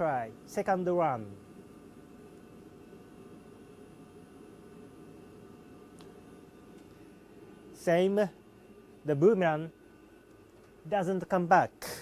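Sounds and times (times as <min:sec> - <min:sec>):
ventilation fans humming: 0:00.0 - 0:12.0.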